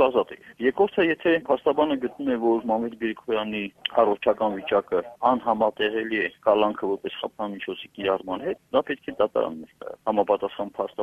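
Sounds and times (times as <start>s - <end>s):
man speaking over telephone: 0.0s - 11.0s.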